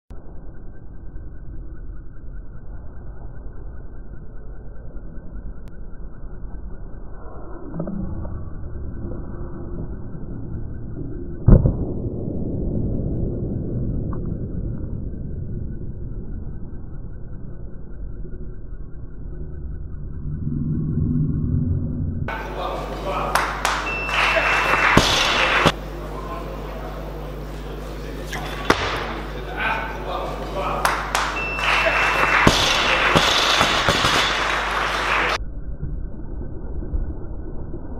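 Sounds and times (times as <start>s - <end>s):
low rumble: 0.1s - 23.0s, 32.5s - 37.9s
voices calling out: 22.3s - 35.4s
barbell smack: 32.4s - 34.9s.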